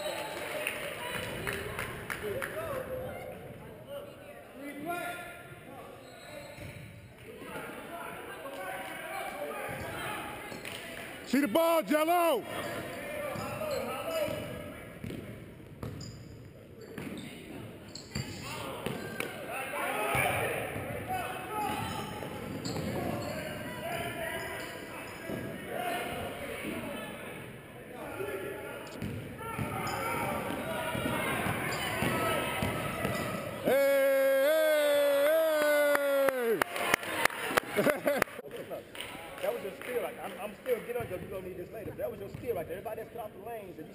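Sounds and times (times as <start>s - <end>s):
voices in gym: 0.0s - 15.4s, 16.1s - 43.9s
basketball bouncing on court: 14.3s - 16.2s, 18.2s - 19.1s, 21.6s - 23.3s, 29.0s - 33.6s.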